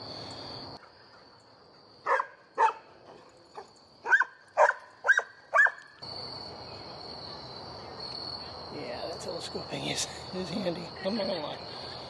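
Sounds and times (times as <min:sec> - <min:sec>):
crickets chirring: 0:00.0 - 0:12.0
dog barking: 0:02.0 - 0:02.8, 0:04.0 - 0:05.8.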